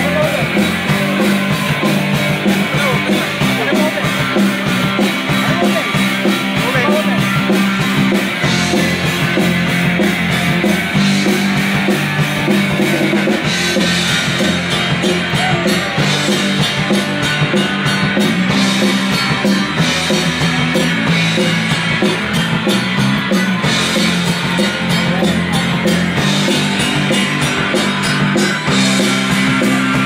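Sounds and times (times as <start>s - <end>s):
bass guitar: 0.0s - 30.0s
electric guitars: 0.0s - 30.0s
steady drum beat: 0.0s - 30.0s.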